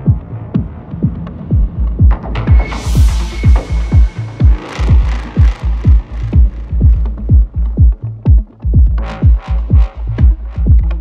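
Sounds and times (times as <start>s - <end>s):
deep sustained bass: 0.0s - 11.0s
techno kick drum: 0.0s - 11.0s.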